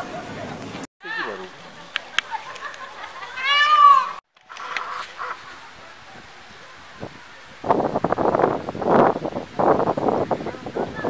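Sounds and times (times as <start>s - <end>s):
fowl clucking and calling: 1.4s - 6.4s.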